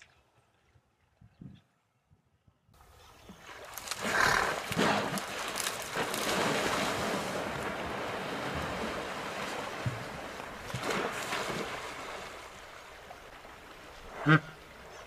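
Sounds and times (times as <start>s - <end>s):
heavy splashing of river water: 2.9s - 15.0s.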